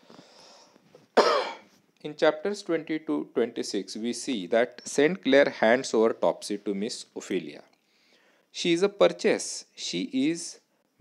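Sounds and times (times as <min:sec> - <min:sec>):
faint breath: 0:00.0 - 0:00.9, 0:07.8 - 0:08.6
man coughing: 0:01.2 - 0:01.7.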